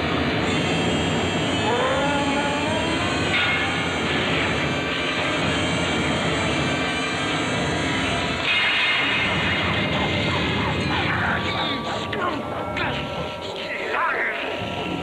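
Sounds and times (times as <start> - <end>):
roaring rumble: 0.0 - 15.0
rising wailing tones: 0.5 - 15.0.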